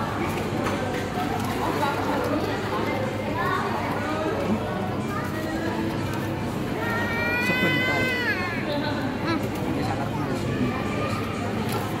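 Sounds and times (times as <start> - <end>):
toddler wailing: 6.8 - 8.7.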